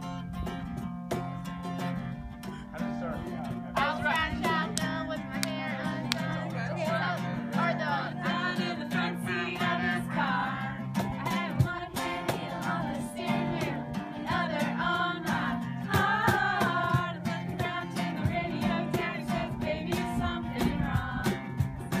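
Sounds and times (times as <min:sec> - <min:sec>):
acoustic guitar strumming: 0:00.0 - 0:22.0.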